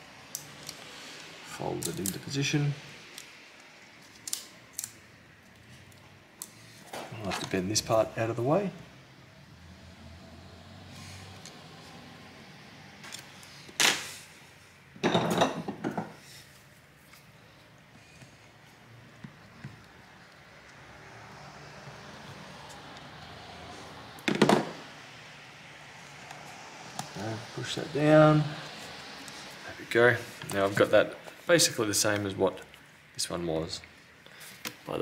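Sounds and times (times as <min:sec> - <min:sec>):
low room noise: 0:00.0 - 0:35.0.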